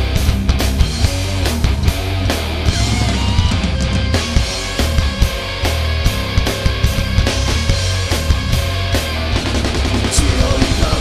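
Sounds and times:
drum and cymbal hits: 0:00.0 - 0:11.0
heavy metal band playing: 0:00.0 - 0:11.0.

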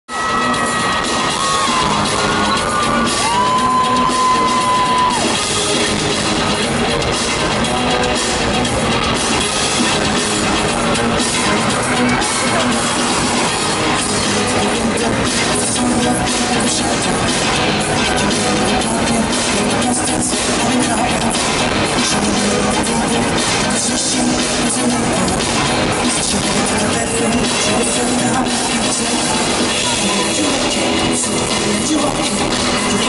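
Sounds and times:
crowd cheering: 0:00.0 - 0:33.0
loud live concert music: 0:00.1 - 0:33.0.

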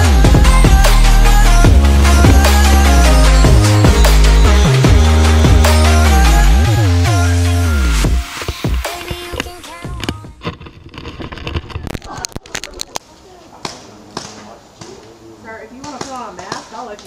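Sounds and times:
people talking indistinctly: 0:11.9 - 0:17.0.

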